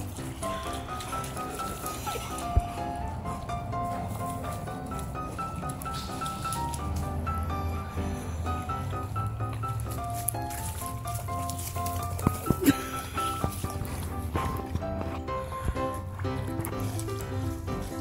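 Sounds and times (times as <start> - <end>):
background music with bass: 0.0 - 18.0.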